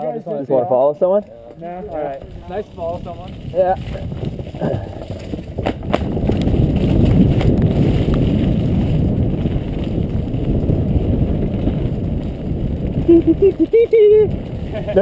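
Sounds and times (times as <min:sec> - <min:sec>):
tyres rumbling on dirt trail: 0:00.3 - 0:15.0
wind on microphone: 0:01.3 - 0:15.0
bike knocking on wooden ramp: 0:01.5 - 0:10.5.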